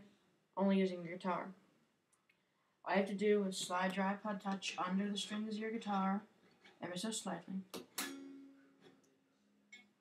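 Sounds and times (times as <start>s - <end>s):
guitar string notes ringing: 7.9s - 9.0s.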